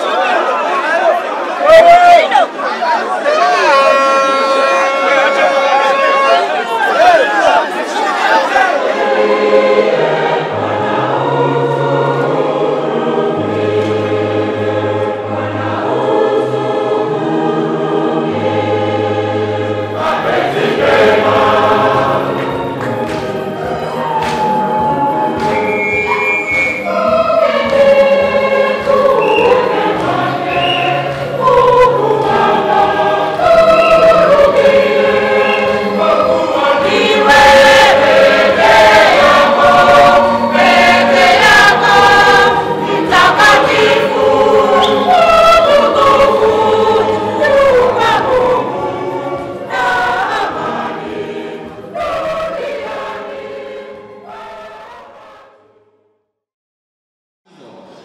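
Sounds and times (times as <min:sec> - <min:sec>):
congregation singing a hymn: 0:03.4 - 0:55.6.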